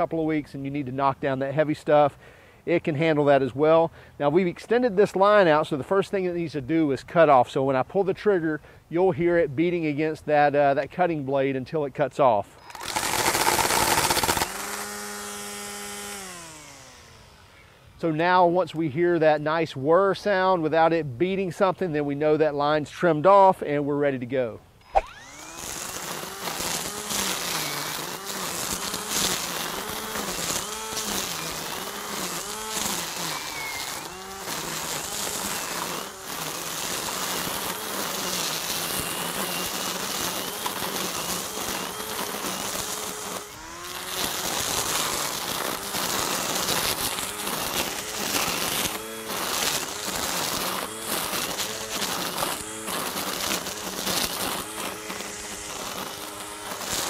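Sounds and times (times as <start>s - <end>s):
string trimmer cutting grass: 12.5s - 18.8s, 24.8s - 57.0s.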